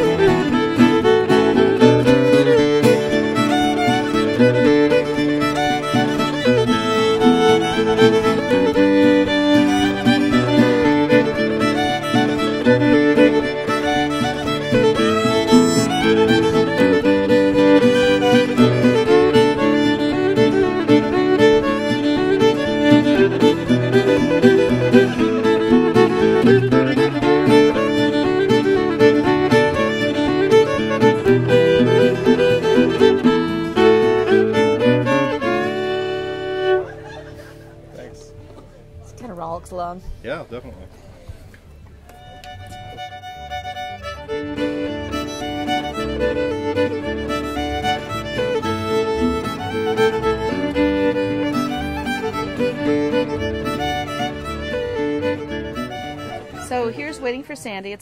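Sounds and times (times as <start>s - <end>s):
fiddle tune: 0.0s - 40.7s, 41.4s - 58.0s
acoustic guitar backing: 0.0s - 58.0s.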